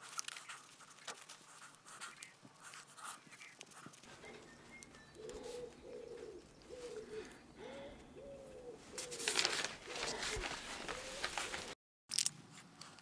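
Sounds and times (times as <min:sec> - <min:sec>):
pigeon cooing: 0:04.1 - 0:11.8.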